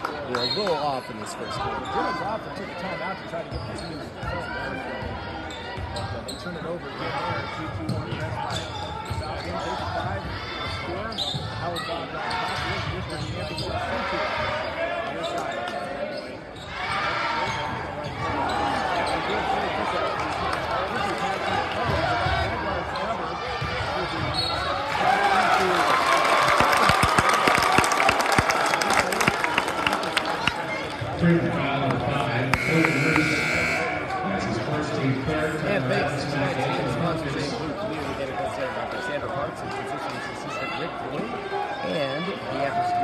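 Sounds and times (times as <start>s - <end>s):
spectators chattering: 0.0s - 43.0s.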